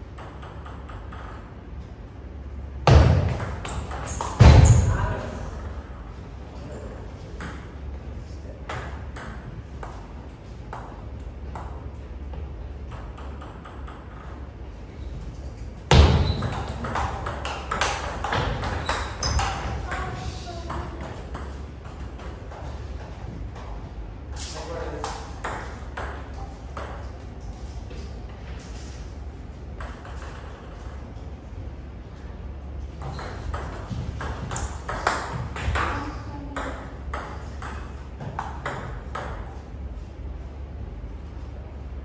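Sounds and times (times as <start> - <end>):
voices: 19.6 - 21.4.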